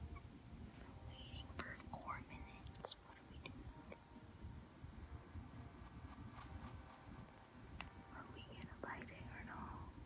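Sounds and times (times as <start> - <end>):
low room rumble: 0.0 - 10.0
breathy whisper: 1.1 - 3.6, 8.1 - 10.0.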